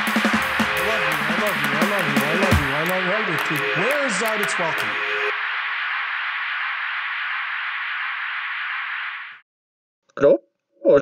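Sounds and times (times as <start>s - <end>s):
music: 0.0s - 5.3s
steady static hiss: 0.0s - 9.4s.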